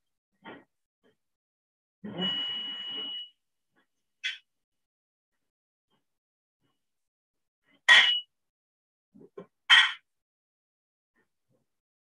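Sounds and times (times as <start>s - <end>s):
high electronic tone: 2.0s - 3.4s.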